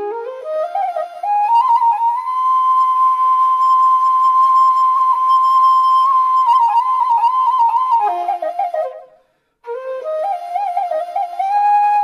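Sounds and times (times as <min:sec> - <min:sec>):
flute holding a long note: 0:00.0 - 0:12.0.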